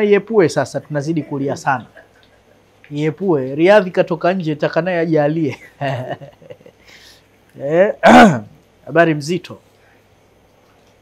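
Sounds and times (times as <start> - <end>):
man speaking: 0.0 - 2.0, 2.9 - 6.2, 7.6 - 9.6
man clearing his throat: 8.0 - 8.5.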